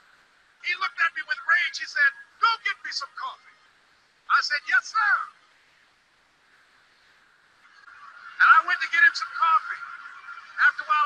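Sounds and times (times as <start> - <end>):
faint recording hiss: 0.0 - 11.0.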